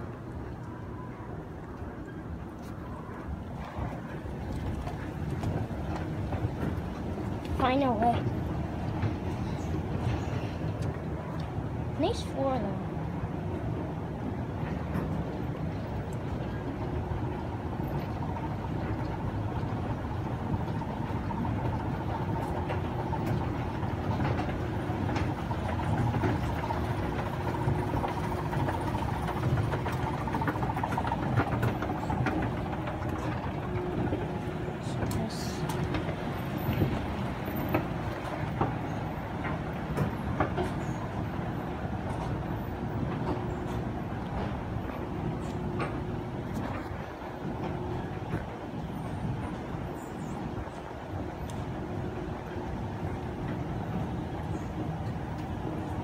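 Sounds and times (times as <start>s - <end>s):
escalator rumble: 0.0s - 56.0s
steady hum: 0.0s - 56.0s.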